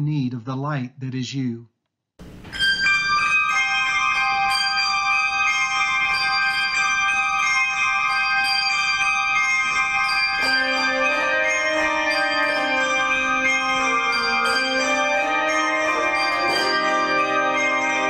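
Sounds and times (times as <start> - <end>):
handbell choir playing: 2.5 - 18.0.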